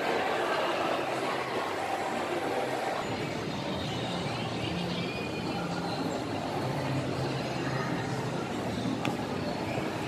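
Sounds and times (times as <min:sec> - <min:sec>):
continuous hum: 0:00.0 - 0:10.0
murmur of distant voices: 0:00.0 - 0:10.0.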